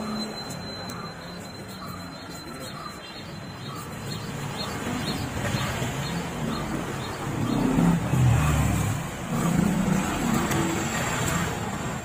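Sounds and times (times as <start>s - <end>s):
busy market background: 0.0s - 12.0s
vehicle engine revving: 5.1s - 12.0s.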